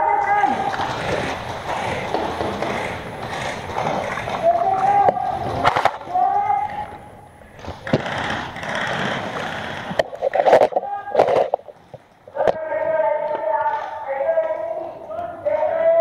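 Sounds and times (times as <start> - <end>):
people shouting: 0.0 - 0.8, 4.4 - 7.0.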